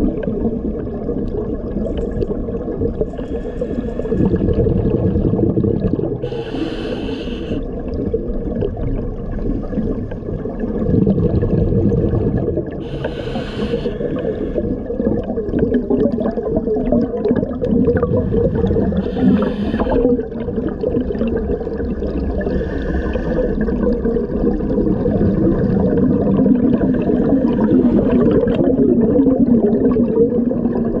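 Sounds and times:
exhaled air bubbling underwater: 0.0 - 31.0
regulator hissing inhalations: 3.2 - 4.2, 6.2 - 7.7, 12.8 - 14.7, 18.9 - 20.1.

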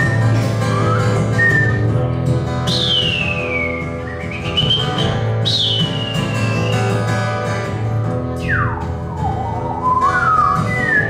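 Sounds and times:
acoustic guitar playing: 0.0 - 11.0
high whistled notes: 2.7 - 7.2, 8.4 - 11.0.

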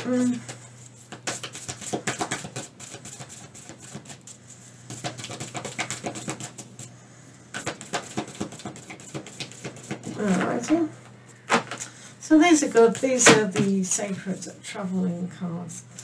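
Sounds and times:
cards being shuffled: 0.1 - 4.3, 4.9 - 6.8.

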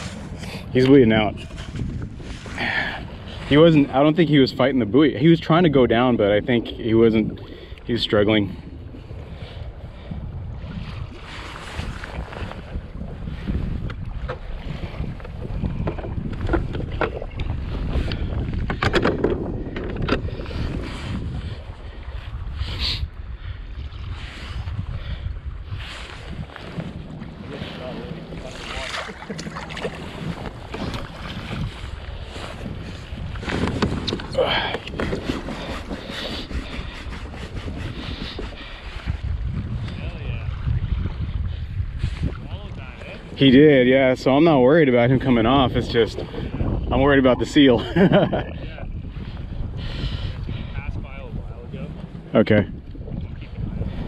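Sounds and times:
sea water sloshing and splashing: 0.0 - 4.2, 7.1 - 46.9
wind buffeting microphone: 0.0 - 54.0
short splashes and knocks: 28.3 - 36.1.

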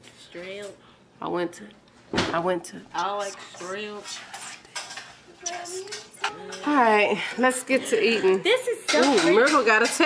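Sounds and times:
dishes and cutlery clinking: 3.3 - 10.0.

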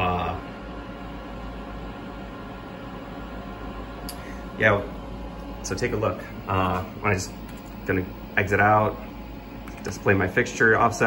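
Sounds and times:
machine hum and hiss: 0.0 - 11.0.

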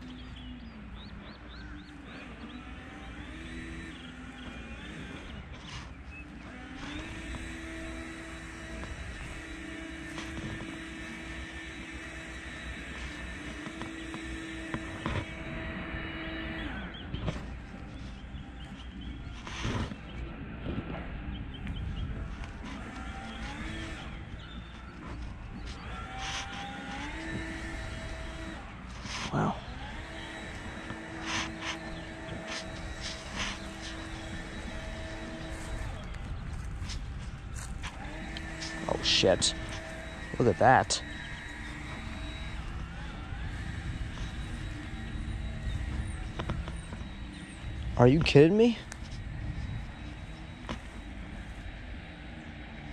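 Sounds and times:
motor humming: 0.0 - 52.9.

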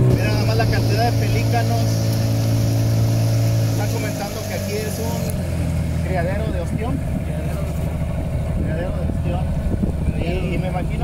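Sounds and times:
boat motor droning: 0.0 - 11.0.

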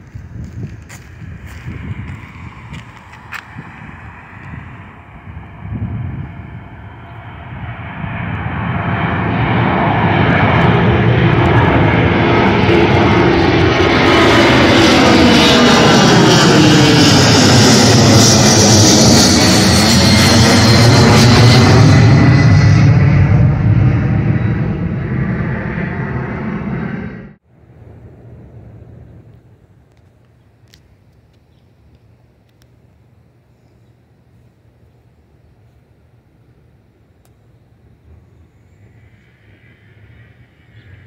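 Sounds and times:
jet airliner flying overhead: 0.0 - 41.0.

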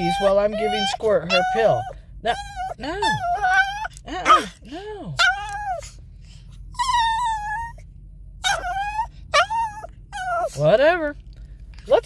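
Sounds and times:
small dog whining: 0.0 - 4.6, 5.2 - 6.0, 6.7 - 7.8, 8.4 - 10.6.

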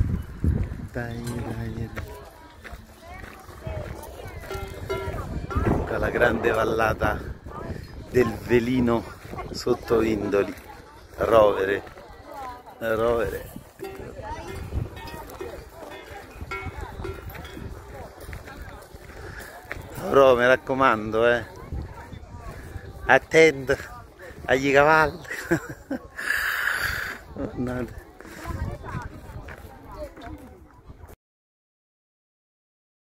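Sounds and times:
voices: 0.0 - 31.1.

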